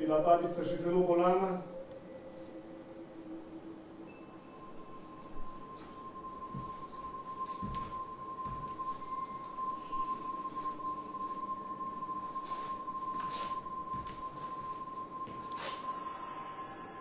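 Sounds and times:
fainter lower tone: 0:00.0 - 0:17.0
steady high pure tone: 0:00.0 - 0:17.0.

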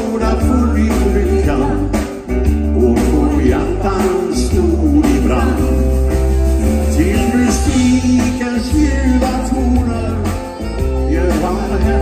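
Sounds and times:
man singing into microphone: 0:00.0 - 0:06.1, 0:06.8 - 0:12.0
live band playing: 0:00.0 - 0:12.0.

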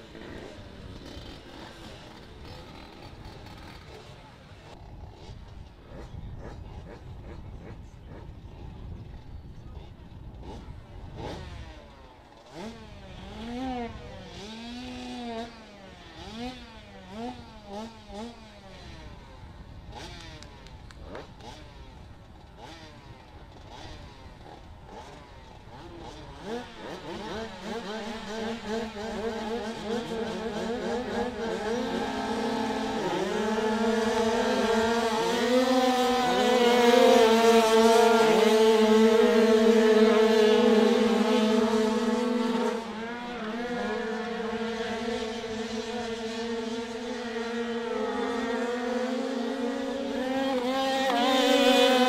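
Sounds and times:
motorcycle engines revving: 0:00.0 - 0:52.0.

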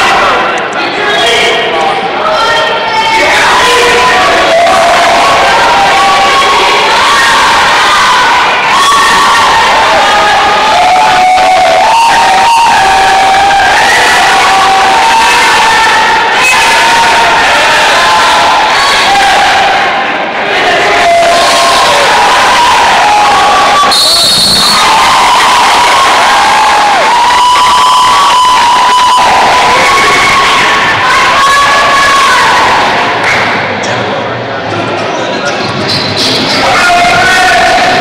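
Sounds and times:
crowd shouting and cheering: 0:00.0 - 0:38.0.

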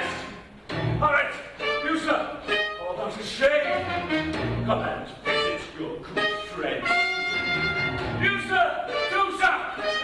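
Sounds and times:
small band with strings: 0:00.0 - 0:10.0.

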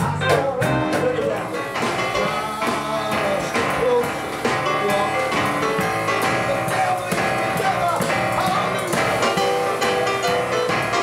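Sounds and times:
man singing into microphone: 0:00.0 - 0:09.4
boogie-woogie piano: 0:00.0 - 0:11.0.

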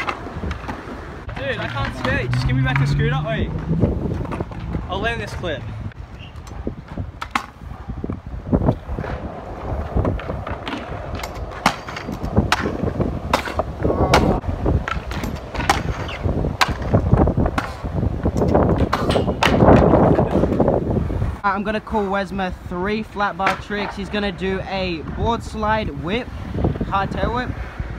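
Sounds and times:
scooter deck clacking: 0:00.0 - 0:08.2, 0:10.0 - 0:20.7, 0:23.4 - 0:24.0
scooter wheels rumbling on concrete: 0:00.0 - 0:22.1, 0:22.7 - 0:27.9.

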